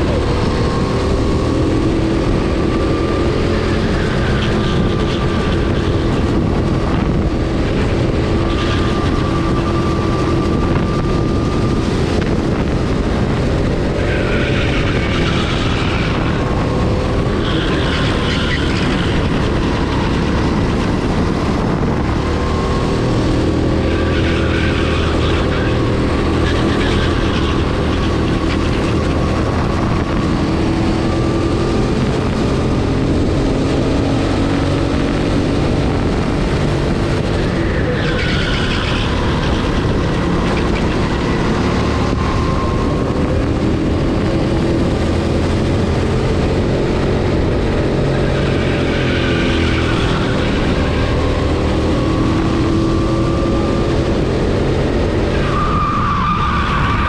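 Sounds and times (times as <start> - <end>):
go-kart engine running hard: 0.0 - 57.0.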